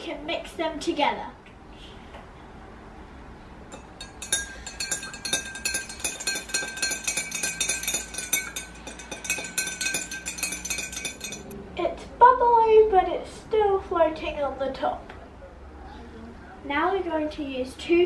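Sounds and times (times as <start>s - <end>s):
teaspoon clinking against a glass: 3.7s - 11.6s.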